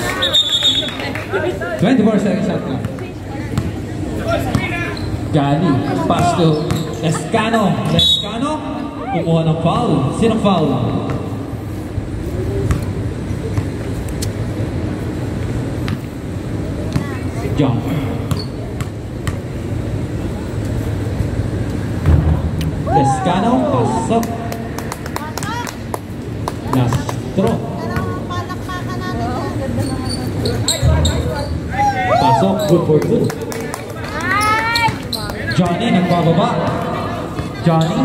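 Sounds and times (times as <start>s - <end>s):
people chattering: 0.0s - 10.4s, 16.4s - 22.0s, 22.7s - 38.0s
basketball bouncing on concrete: 18.3s - 19.5s
people shouting: 22.8s - 24.1s, 31.7s - 32.7s.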